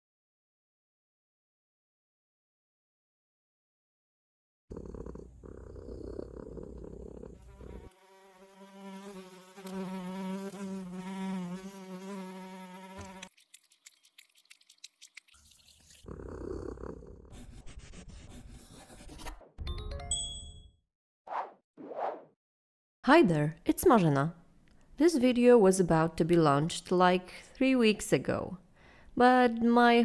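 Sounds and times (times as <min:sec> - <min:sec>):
cartoon fly buzzing: 0:07.4 - 0:13.3.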